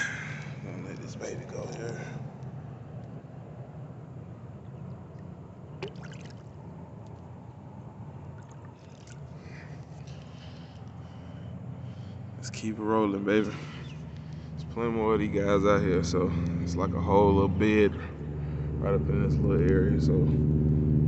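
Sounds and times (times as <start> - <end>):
low hum: 0.0 - 21.0
water lapping against rocks: 5.1 - 6.6.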